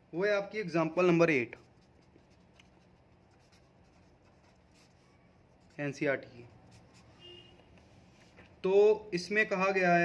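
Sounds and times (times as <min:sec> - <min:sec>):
felt-tip pen writing on paper: 0:01.6 - 0:07.9.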